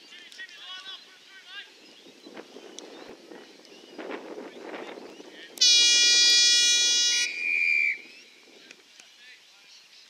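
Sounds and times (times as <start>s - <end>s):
siren blast: 5.6s - 8.0s.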